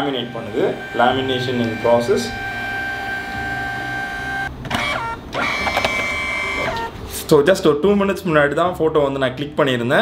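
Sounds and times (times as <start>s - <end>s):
falling whir: 0.0s - 6.9s
printer motor whining: 0.0s - 7.0s.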